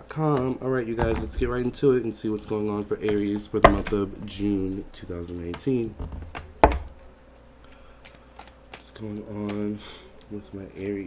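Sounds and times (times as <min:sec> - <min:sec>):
cards being shuffled: 0:06.5 - 0:09.7.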